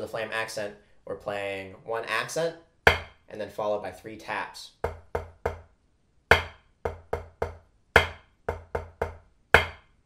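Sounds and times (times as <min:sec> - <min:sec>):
drumstick on practice pad: 0:02.8 - 0:03.2, 0:04.8 - 0:05.7, 0:06.3 - 0:10.0.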